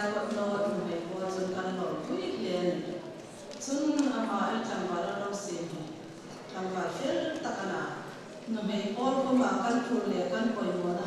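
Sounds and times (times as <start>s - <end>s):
woman speaking into a microphone: 0.0s - 11.0s.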